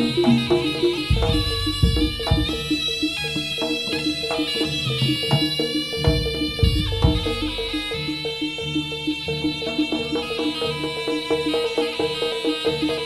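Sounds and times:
metallophone pattern: 0.0s - 3.6s
shawm melody: 0.0s - 13.0s
deep drum strokes: 1.0s - 3.2s, 6.0s - 8.1s.

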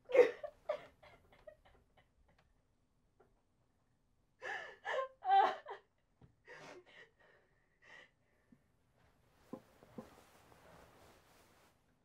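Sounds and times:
woman sobbing in gasping breaths: 4.4s - 8.2s.

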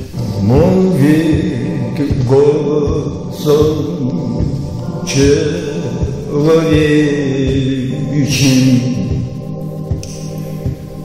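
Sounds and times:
musical accompaniment: 0.0s - 11.0s
person singing or chanting: 0.0s - 11.0s
soft low beat: 0.0s - 11.0s.

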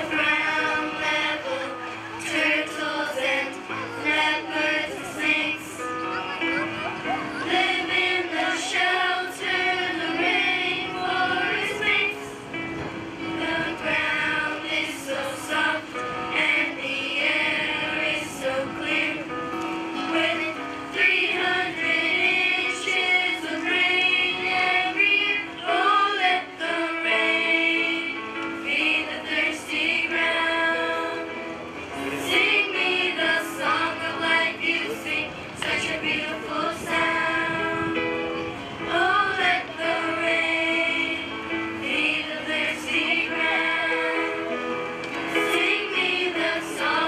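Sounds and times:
backing music: 0.0s - 47.0s
children's choir singing: 0.0s - 47.0s.

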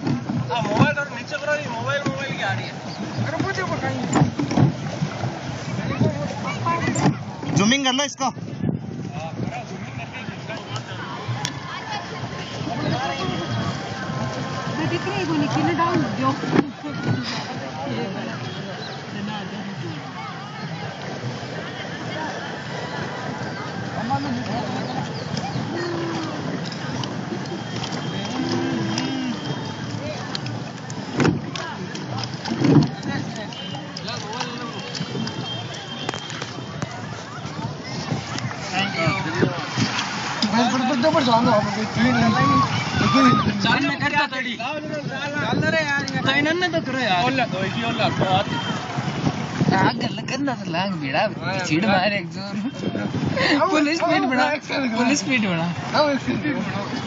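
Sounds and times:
people talking and calling out: 0.0s - 57.0s
water noise: 0.0s - 57.0s
wind: 0.0s - 57.0s.

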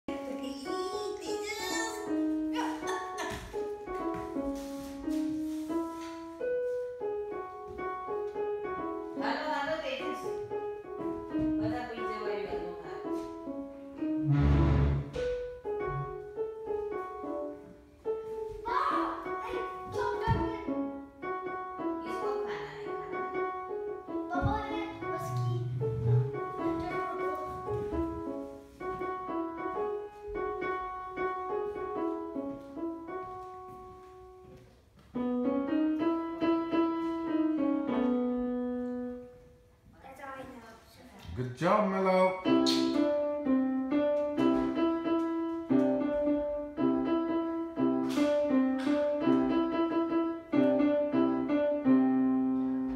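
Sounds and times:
electronic keyboard piano tune: 0.1s - 34.5s, 35.2s - 39.4s, 42.2s - 52.9s.

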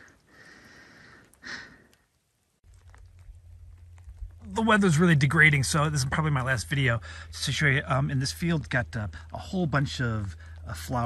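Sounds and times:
person breathing out: 0.0s - 1.9s, 7.0s - 7.3s
faint outdoor background noise: 0.0s - 11.0s
low steady rumble: 0.0s - 11.0s.

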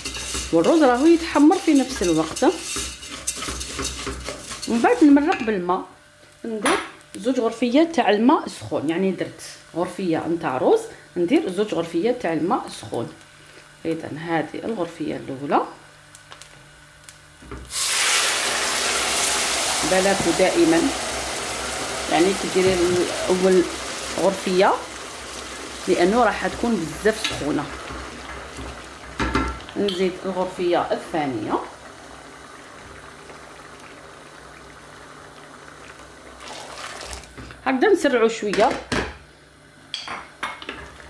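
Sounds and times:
pot boiling and bubbling: 0.0s - 5.8s, 10.4s - 37.8s
water poured into hot pot: 17.7s - 26.0s, 31.9s - 37.4s
loud sizzling hiss: 17.7s - 27.7s.

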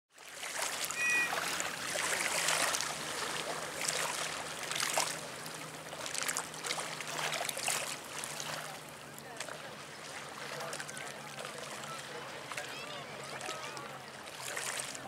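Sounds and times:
water lapping and splashing: 0.1s - 15.0s
high two-note chirp: 0.9s - 1.4s.

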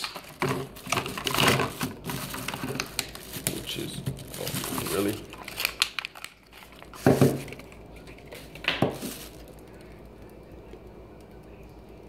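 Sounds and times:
plastic blister pack crinkling: 0.0s - 10.4s.

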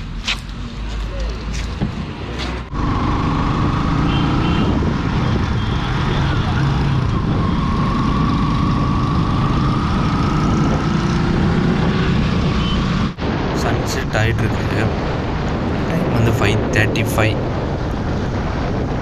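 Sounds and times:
wind and road noise: 0.0s - 19.0s
motorcycle engine cruising: 2.7s - 13.2s.

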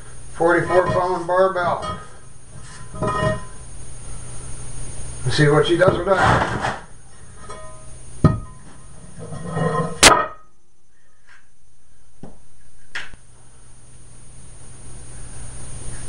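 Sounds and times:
loud metal clank: 5.9s - 8.7s, 9.8s - 10.5s.

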